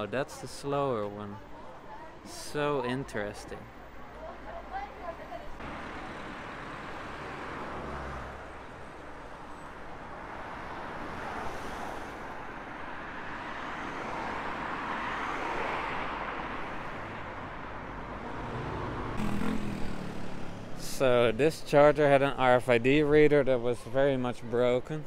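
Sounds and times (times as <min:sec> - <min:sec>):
traffic driving past: 0:00.9 - 0:22.4.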